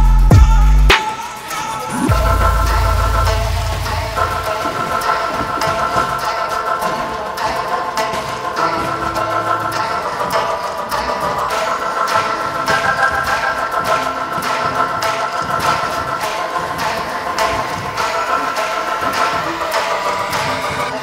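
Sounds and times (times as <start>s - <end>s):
quick percussive beat: 0.0s - 9.5s
sustained chords: 0.0s - 21.0s.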